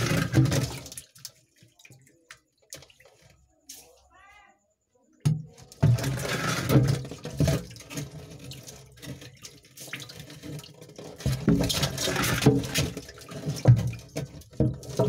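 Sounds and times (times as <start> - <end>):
water splashing and sloshing: 0.0 - 4.0, 5.3 - 15.0.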